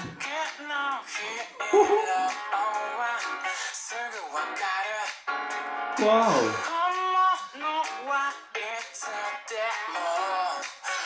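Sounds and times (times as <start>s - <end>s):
backing music: 0.0s - 11.0s
man singing pop song: 0.0s - 11.0s.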